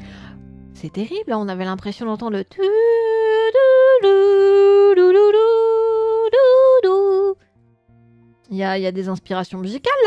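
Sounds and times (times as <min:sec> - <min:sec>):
woman singing sustained notes: 0:02.6 - 0:07.4.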